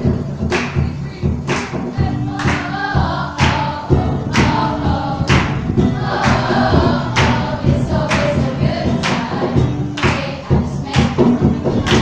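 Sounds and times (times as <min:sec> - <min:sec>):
girls choir singing: 0:00.0 - 0:12.0
strong beat: 0:00.0 - 0:12.0.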